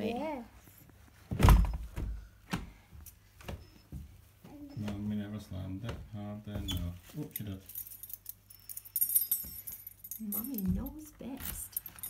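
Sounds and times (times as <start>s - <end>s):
key jingling against metal handle: 7.3s - 12.0s.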